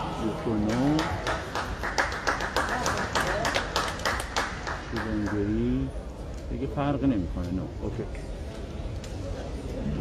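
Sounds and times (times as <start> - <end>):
voices in an arena: 0.0 - 10.0
scattered hand claps: 0.5 - 5.5.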